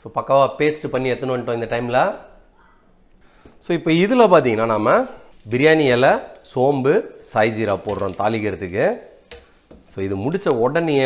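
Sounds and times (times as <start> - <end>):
man talking: 3.6 - 9.1, 9.8 - 11.0.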